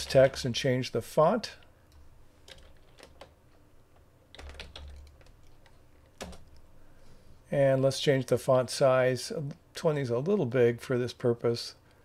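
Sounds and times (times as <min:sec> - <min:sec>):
typing on computer keyboard: 0:02.5 - 0:03.3, 0:04.3 - 0:06.6.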